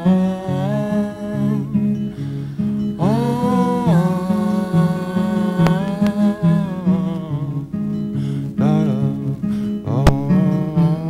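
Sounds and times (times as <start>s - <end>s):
wordless sung note: 0.0s - 9.3s
acoustic guitar playing: 0.0s - 11.0s.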